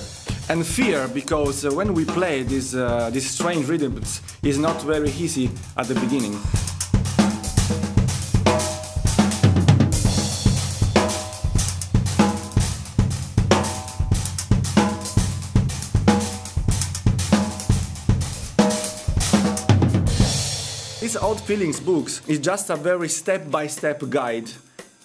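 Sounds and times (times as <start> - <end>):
drum kit groove: 0.0 - 25.0
cymbal crashes: 17.4 - 22.4.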